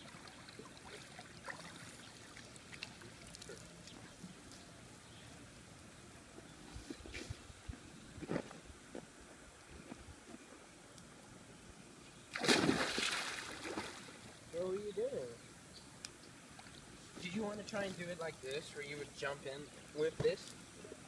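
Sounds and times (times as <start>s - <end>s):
pool water lapping: 0.0s - 4.4s, 12.3s - 15.0s
small splashes and knocks: 12.3s - 14.9s.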